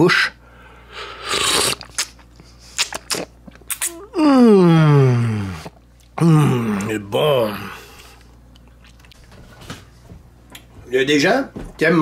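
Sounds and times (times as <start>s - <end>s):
person slurping an oyster: 0.9s - 4.4s.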